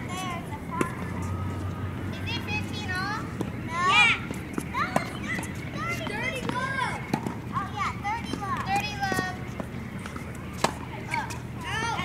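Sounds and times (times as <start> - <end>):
tennis ball hitting racket: 4.3 - 7.4, 8.2 - 11.4.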